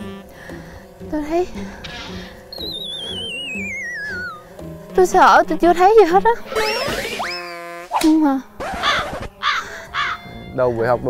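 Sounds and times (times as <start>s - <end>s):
soft background music: 0.0s - 6.7s, 9.4s - 11.0s
wobbling whistle gliding downward: 2.6s - 4.4s.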